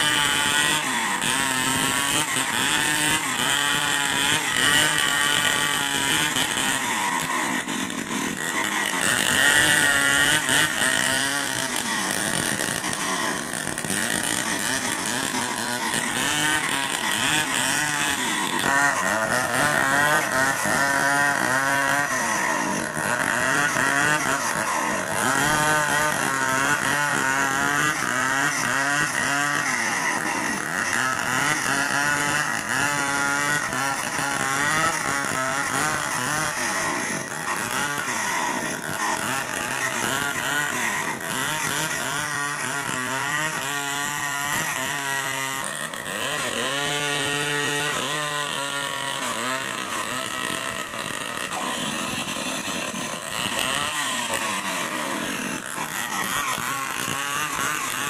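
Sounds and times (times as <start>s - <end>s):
chainsaw cutting through log: 0.0s - 58.0s.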